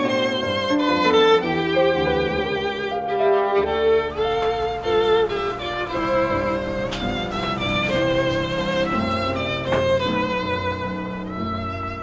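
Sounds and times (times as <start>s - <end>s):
violin melody: 0.0s - 12.0s.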